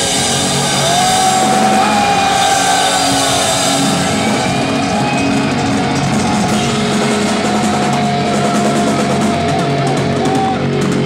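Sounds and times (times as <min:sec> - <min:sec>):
drum kit: 0:00.0 - 0:11.0
electric guitar bending notes: 0:00.0 - 0:11.0
heavy metal band playing live: 0:00.0 - 0:11.0.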